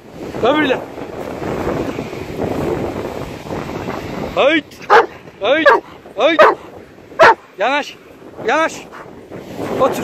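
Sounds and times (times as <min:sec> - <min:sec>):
sea surf: 0:00.0 - 0:10.0
wind buffeting microphone: 0:00.0 - 0:10.0.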